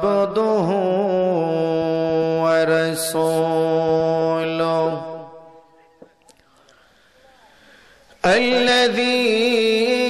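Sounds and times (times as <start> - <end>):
man chanting through microphone: 0.0 - 6.0, 8.2 - 10.0.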